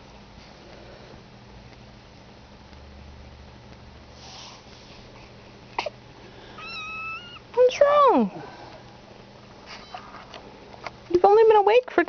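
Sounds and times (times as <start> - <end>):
kitten chirping and mewing: 6.5 - 7.6.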